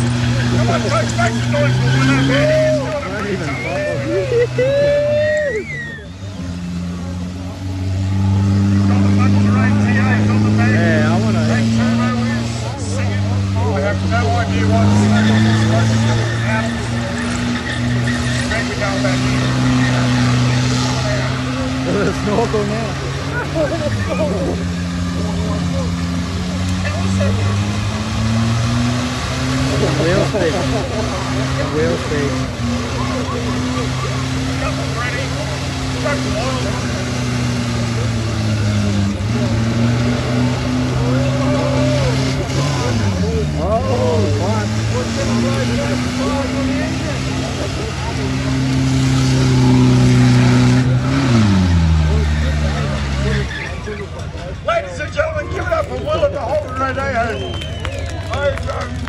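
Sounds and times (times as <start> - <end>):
engine revving at high revs: 0.0 - 5.2, 6.2 - 53.8.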